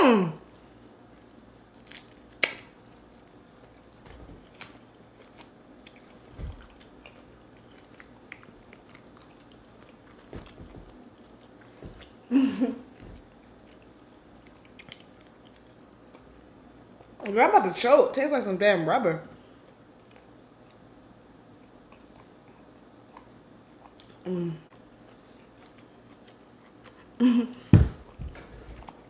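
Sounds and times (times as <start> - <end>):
chewing meat: 1.1 - 12.2, 12.9 - 17.2, 21.6 - 27.2.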